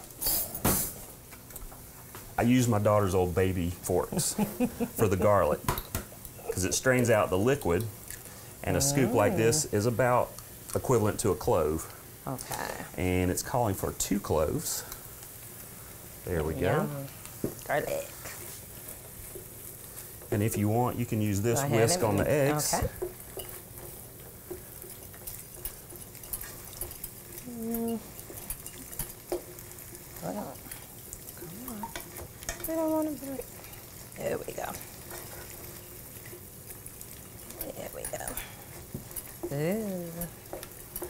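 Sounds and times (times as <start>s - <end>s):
meat sizzling in a frying pan: 0.0s - 41.0s
wooden spoon stirring: 18.2s - 41.0s.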